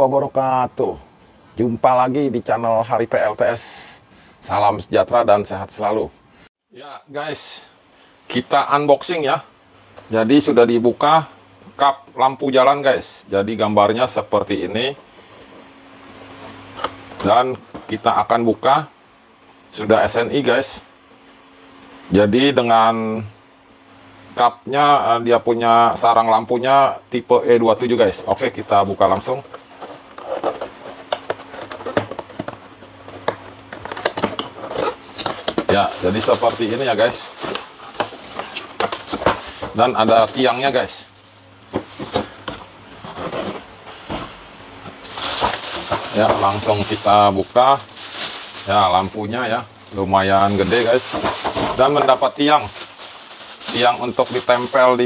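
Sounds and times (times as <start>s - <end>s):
faint steady hum: 0.0s - 55.0s
plastic bag rustling and crinkling: 28.0s - 55.0s
sharp crackles and knocks: 29.2s - 55.0s.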